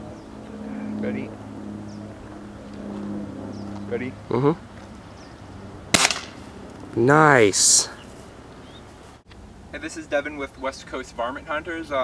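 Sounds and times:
air rifle shot: 5.9 - 6.4.

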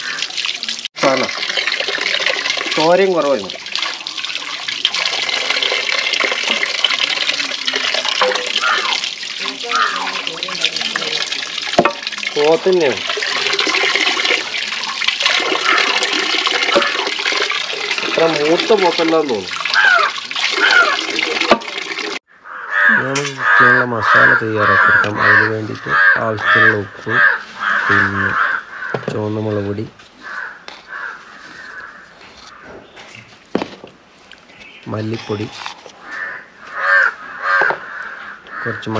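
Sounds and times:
water splashing into a pot: 0.0 - 22.2
crow cawing: 8.2 - 10.5, 15.5 - 16.0, 16.7 - 17.1, 19.7 - 21.1, 22.3 - 29.1, 30.2 - 32.9, 35.9 - 38.9.

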